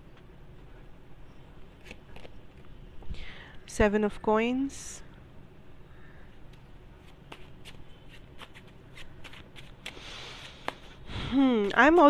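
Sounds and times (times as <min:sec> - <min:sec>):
cards being shuffled: 0:01.8 - 0:02.7, 0:07.0 - 0:10.9.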